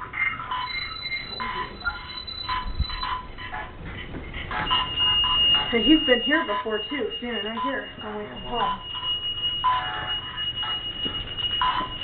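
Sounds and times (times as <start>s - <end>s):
thin steady high tone: 0.4s - 12.0s
choppy echoing voice fragments: 3.2s - 8.9s.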